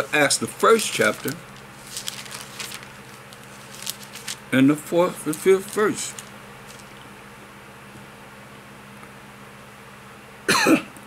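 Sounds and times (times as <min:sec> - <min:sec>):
faint room hum: 0:00.0 - 0:11.0
man coughing: 0:10.5 - 0:11.0.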